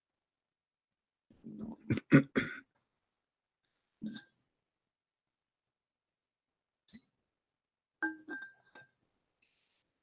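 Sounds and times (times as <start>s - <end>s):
person clearing throat: 1.7s - 2.7s
person coughing: 1.8s - 2.7s.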